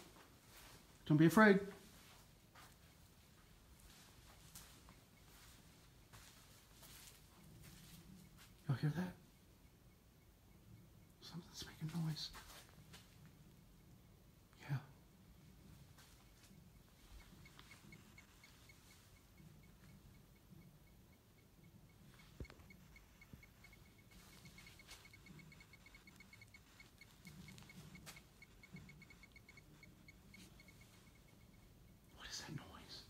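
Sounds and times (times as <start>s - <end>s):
rapid high-pitched ticking: 2.8s - 33.0s.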